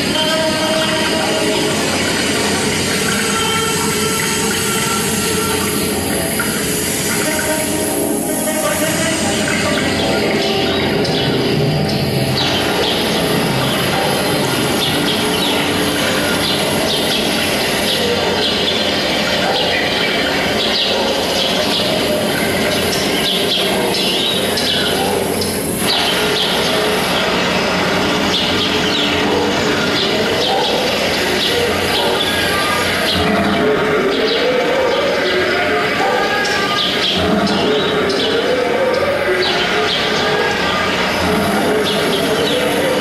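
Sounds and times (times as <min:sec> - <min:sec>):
flock of birds chirping: 0:00.0 - 0:43.0.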